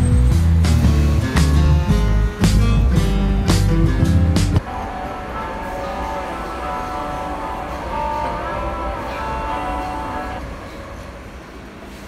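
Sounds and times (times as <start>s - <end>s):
background music: 0.0s - 10.4s
metro train rumble: 0.0s - 12.0s.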